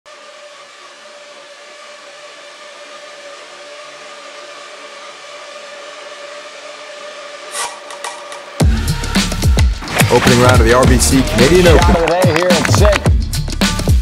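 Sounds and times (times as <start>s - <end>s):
machine-like hissing drone: 0.1s - 11.8s.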